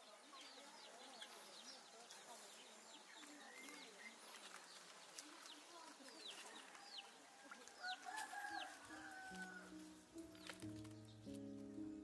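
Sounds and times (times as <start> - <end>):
small birds chirping: 0.0 - 12.0
rooster crowing: 7.8 - 9.7
soft music notes: 8.8 - 12.0.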